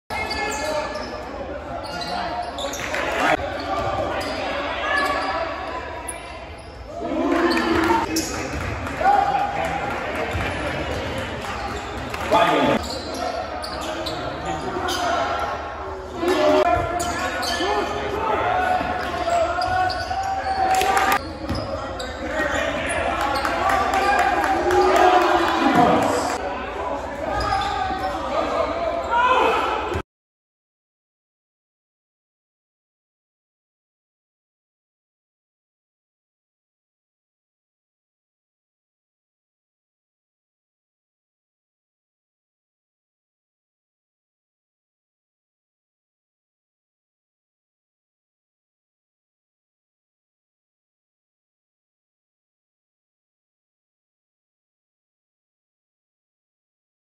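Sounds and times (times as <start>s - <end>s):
voices ringing in a hall: 0.1s - 30.0s
people shouting in echoing hall: 8.9s - 9.8s, 22.3s - 30.0s.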